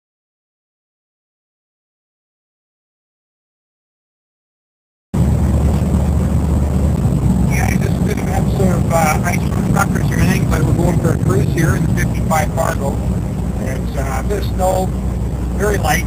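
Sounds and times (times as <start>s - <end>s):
pickup truck engine droning: 5.2s - 16.0s
man talking: 7.5s - 16.0s.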